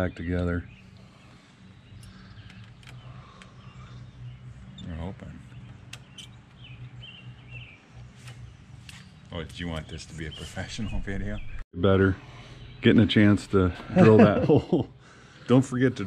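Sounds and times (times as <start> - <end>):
faint bird chirps: 0.0 - 11.6
sharp small clicks: 1.9 - 3.6, 5.6 - 6.7.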